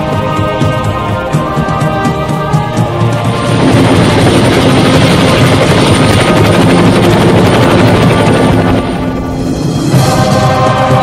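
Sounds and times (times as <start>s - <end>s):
helicopter rotor whir: 0.0s - 11.0s.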